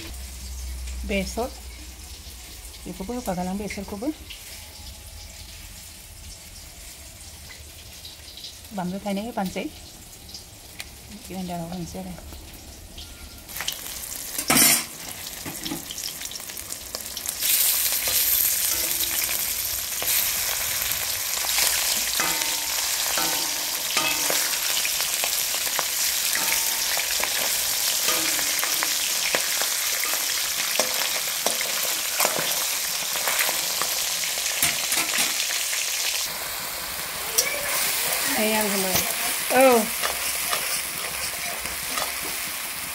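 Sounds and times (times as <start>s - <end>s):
fish sizzling in hot oil: 0.0s - 42.9s
metal spatula scraping a pan: 17.4s - 20.5s, 21.4s - 33.6s, 38.9s - 42.5s.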